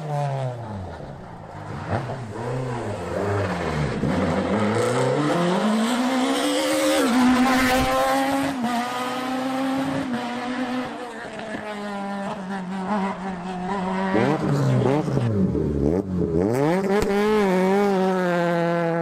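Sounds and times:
rally car engine accelerating: 0.0 - 19.0.

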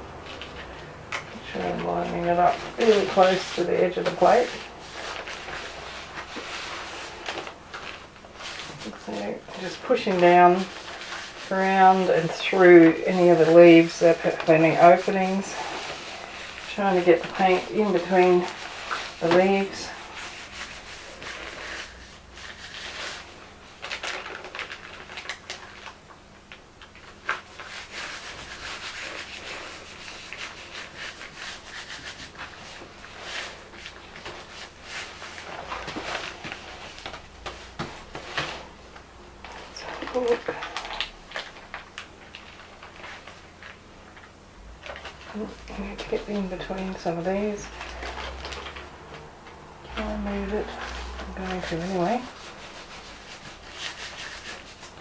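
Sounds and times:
hand rubbing paper: 0.2 - 25.4, 27.2 - 43.8, 44.8 - 55.0
paper rustle: 1.6 - 26.1, 26.8 - 38.7, 39.4 - 49.3.

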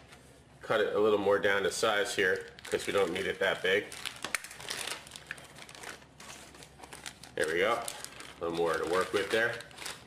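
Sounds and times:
plastic bag crinkling: 2.2 - 10.0.

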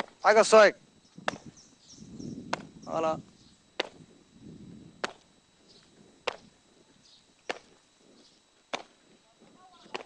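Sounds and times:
boots stamping on hard ground: 3.8 - 4.0, 5.0 - 10.0.

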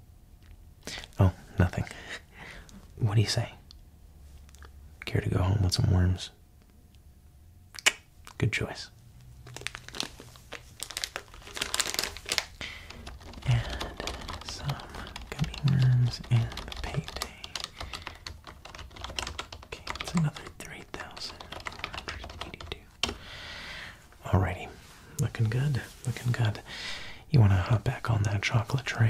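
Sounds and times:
plastic candy packaging crinkling: 9.2 - 23.2.

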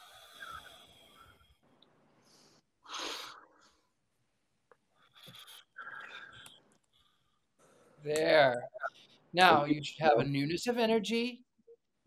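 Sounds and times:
person breathing deeply: 0.0 - 1.6, 2.2 - 3.9.

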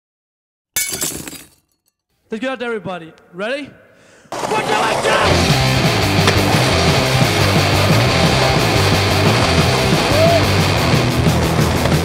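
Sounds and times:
glass shattering: 0.8 - 2.0.

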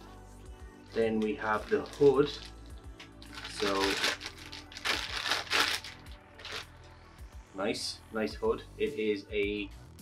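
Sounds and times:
plastic bag crinkling: 1.4 - 2.6, 3.2 - 6.6.

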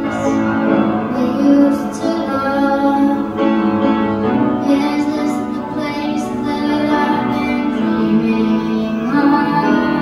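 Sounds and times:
child singing sustained notes: 0.0 - 3.6, 4.5 - 10.0
instrumental accompaniment: 0.0 - 10.0.

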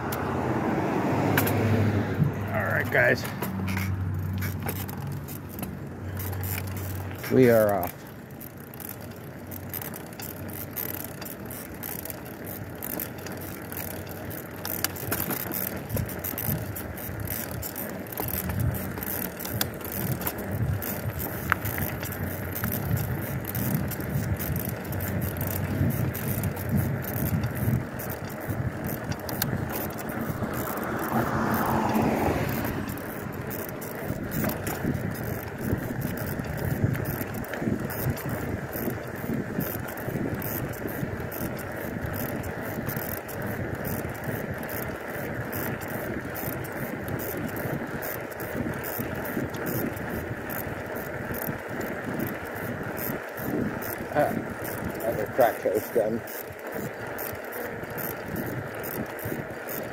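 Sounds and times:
bicycle tyres rolling on concrete: 0.0 - 59.9
bike clicks and rattles: 0.0 - 59.9.

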